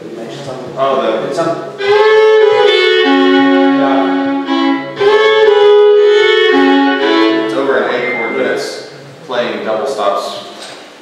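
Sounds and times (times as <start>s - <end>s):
fiddle playing bowed notes: 1.4s - 8.7s.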